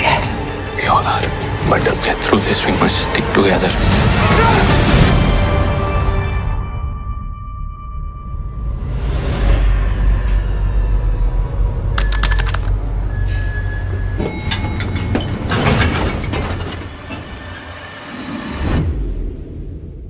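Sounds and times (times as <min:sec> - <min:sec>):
sharp clicks: 0:12.0 - 0:12.8.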